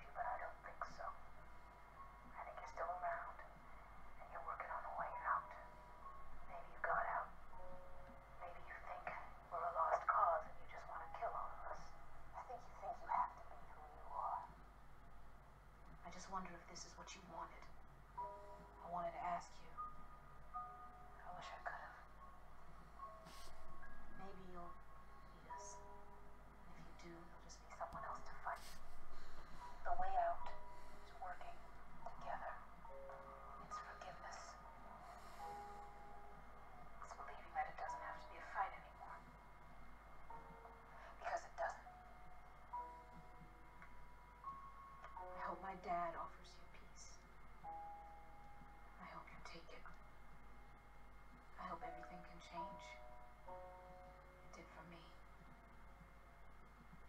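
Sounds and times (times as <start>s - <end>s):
tv dialogue over speakers: 0.0s - 14.8s, 15.6s - 42.1s, 42.7s - 47.9s, 48.9s - 50.1s, 51.5s - 55.7s
quiet background music: 0.0s - 57.0s.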